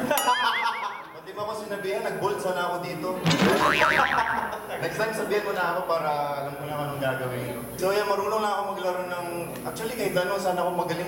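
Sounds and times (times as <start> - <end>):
cartoon boing sound effect: 0.2 - 1.2, 3.2 - 4.7.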